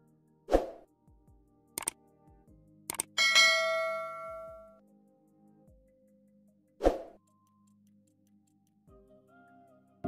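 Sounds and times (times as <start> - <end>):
mouse click: 1.8 - 2.0, 2.9 - 3.2
bright bell ding: 3.2 - 4.7.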